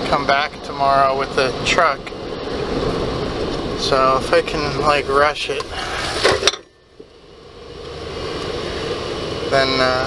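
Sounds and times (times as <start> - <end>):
truck cab road and engine noise: 0.0 - 10.0.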